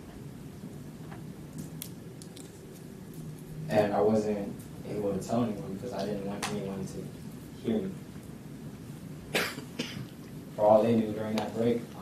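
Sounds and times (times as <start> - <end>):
person coughing: 9.3 - 10.1.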